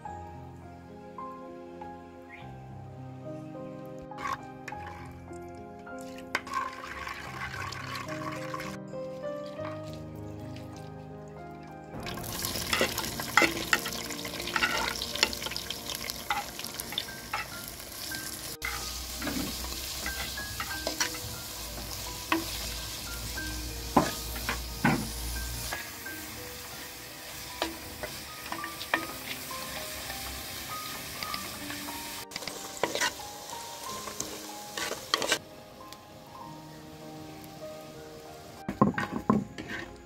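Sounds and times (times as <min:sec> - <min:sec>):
wooden spoon scraping a pot: 0:04.2 - 0:05.1, 0:12.3 - 0:15.5, 0:18.6 - 0:21.2, 0:32.4 - 0:33.2, 0:34.0 - 0:35.4, 0:38.7 - 0:40.0
food sizzling in hot oil: 0:06.0 - 0:08.8, 0:12.0 - 0:35.4.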